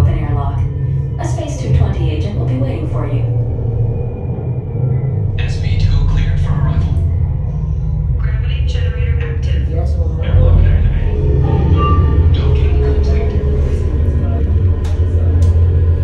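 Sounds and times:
people's voices: 0:00.0 - 0:03.3, 0:05.4 - 0:16.0
low rumble: 0:00.0 - 0:16.0
soundtrack music: 0:00.0 - 0:16.0.

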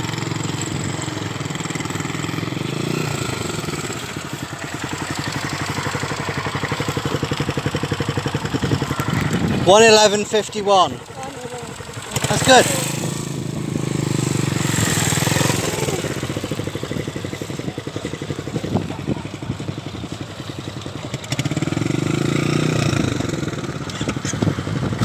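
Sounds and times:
motorcycle engine running: 0:00.0 - 0:25.0.

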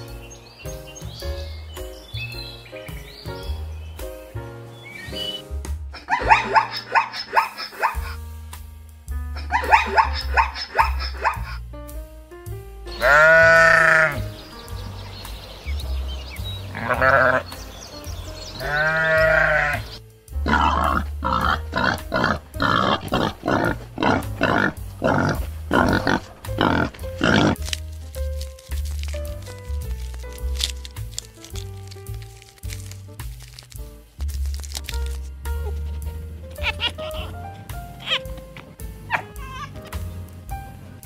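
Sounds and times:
background music: 0:00.0 - 0:41.0
sheep bleating: 0:12.9 - 0:14.3, 0:16.8 - 0:17.5, 0:18.6 - 0:27.6.

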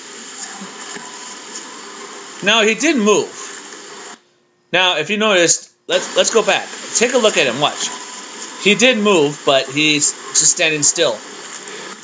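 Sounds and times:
steady hiss: 0:00.0 - 0:04.2, 0:05.4 - 0:12.0.

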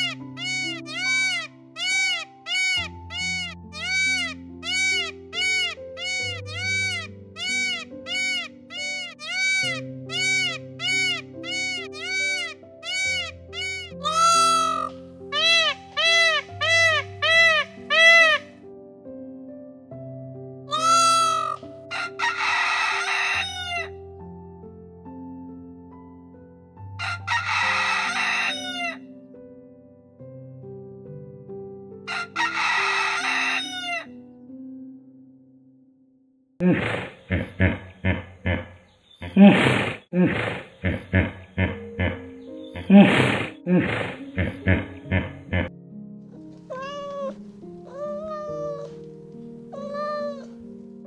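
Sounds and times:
peacock calling: 0:00.0 - 0:18.6, 0:20.7 - 0:23.9, 0:27.0 - 0:29.0, 0:32.1 - 0:34.1, 0:36.9 - 0:40.1, 0:40.9 - 0:45.7, 0:46.6 - 0:49.0, 0:49.7 - 0:50.6
soft background music: 0:00.0 - 0:35.7, 0:40.8 - 0:51.0
rooster crowing: 0:14.0 - 0:14.9, 0:20.7 - 0:23.9, 0:27.0 - 0:29.0, 0:32.1 - 0:34.1.

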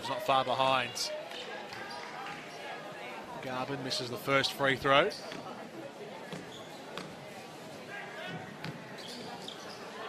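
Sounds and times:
murmur of arena crowd: 0:00.0 - 0:10.0.

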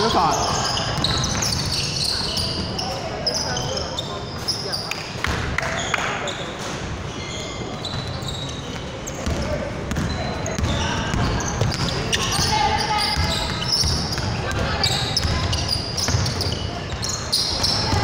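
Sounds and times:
sneakers squeaking: 0:00.0 - 0:18.0
voices in background: 0:00.0 - 0:18.0
basketball bouncing: 0:09.2 - 0:18.0.

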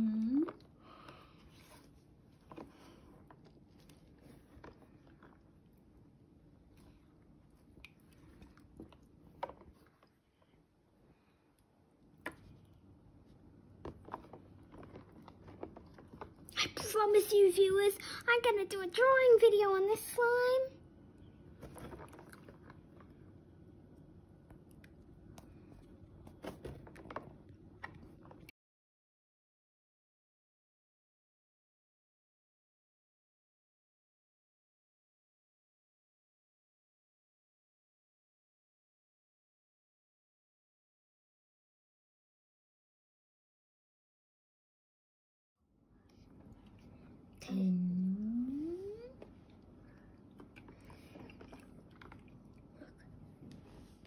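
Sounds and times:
slime squishing: 0:12.0 - 0:17.3, 0:21.4 - 0:28.5, 0:48.6 - 0:54.0.

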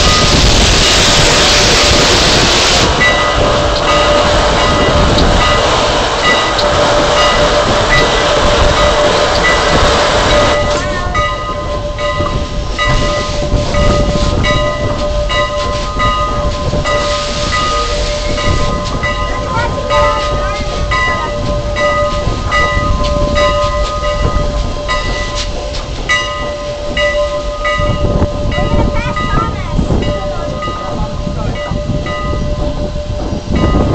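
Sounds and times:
locomotive bell ringing: 0:00.0 - 0:33.9
train rumbling: 0:00.0 - 0:33.9.

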